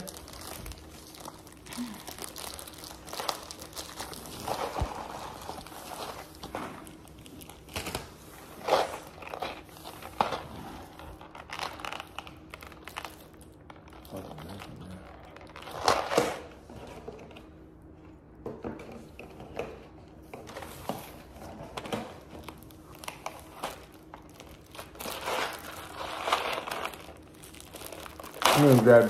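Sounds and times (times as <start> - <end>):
plastic wrapping crinkling: 0.0 - 17.5, 20.4 - 29.0.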